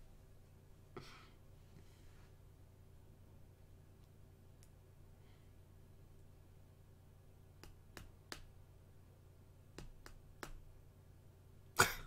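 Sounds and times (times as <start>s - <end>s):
man laughing: 11.8s - 12.0s.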